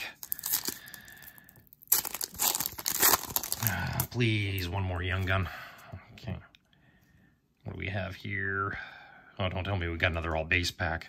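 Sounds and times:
foil wrapper tearing and crinkling: 0:00.0 - 0:04.1.

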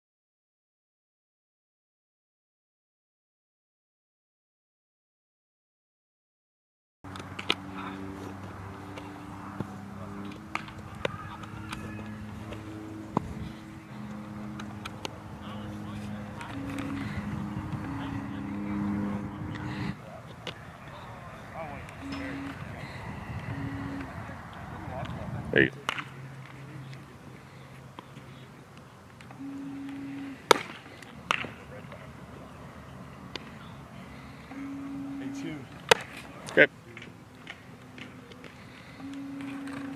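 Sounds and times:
low machine-like hum: 0:07.1 - 0:39.9
bat cracking off baseball: 0:30.4 - 0:31.6.

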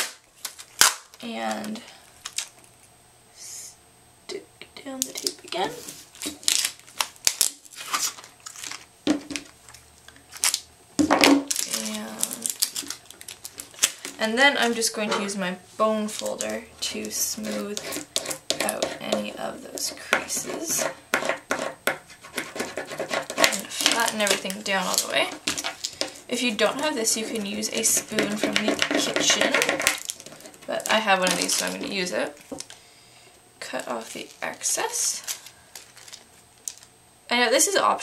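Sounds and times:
tape crinkling rustles: 0:00.0 - 0:02.9, 0:05.0 - 0:20.9, 0:22.1 - 0:32.8, 0:33.6 - 0:37.0
bone folder scraping over tape: 0:17.3 - 0:32.6.

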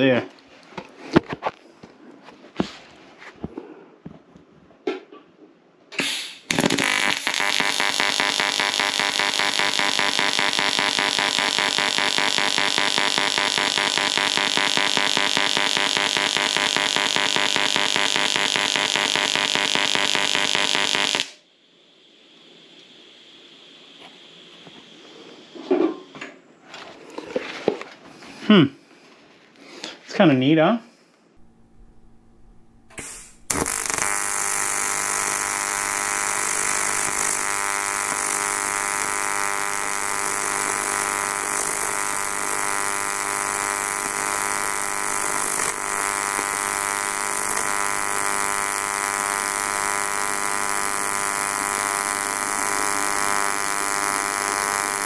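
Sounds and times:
welding arc buzzing: 0:06.0 - 0:21.4, 0:31.4 - 0:55.0.

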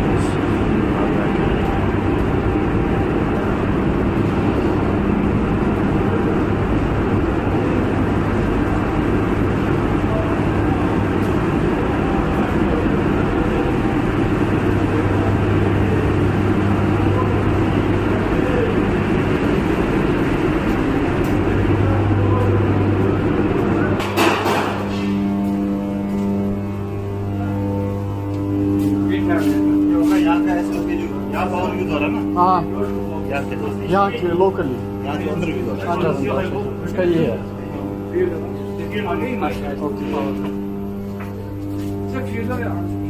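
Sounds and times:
low hum: 0:00.0 - 0:43.0
machinery drone: 0:00.0 - 0:43.0.

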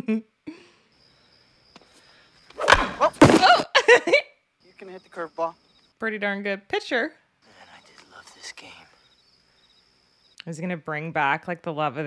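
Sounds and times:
crickets chirping: 0:00.5 - 0:06.4, 0:07.4 - 0:10.9
bat hitting baseball: 0:02.6 - 0:03.6.

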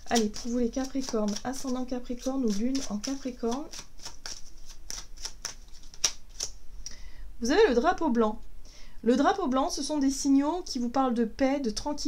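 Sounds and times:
cards being shuffled by hand: 0:00.0 - 0:06.6.

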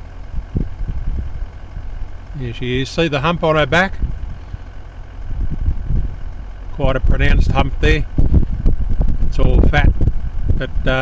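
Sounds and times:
vehicle engine idling: 0:00.0 - 0:11.0
soft low bumps: 0:03.7 - 0:10.6.

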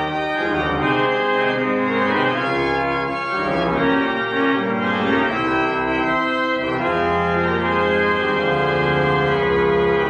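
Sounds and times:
church organ sustained chords: 0:00.0 - 0:10.0.

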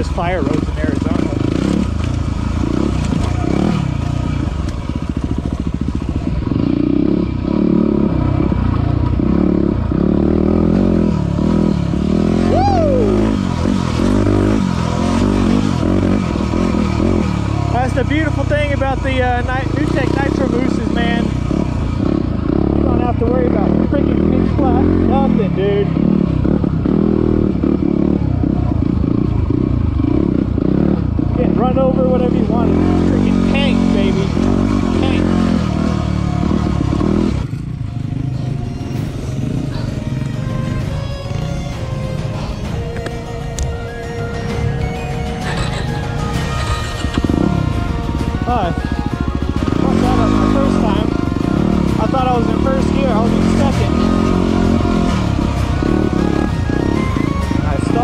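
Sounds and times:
motorcycle engine revving: 0:00.0 - 0:58.0.

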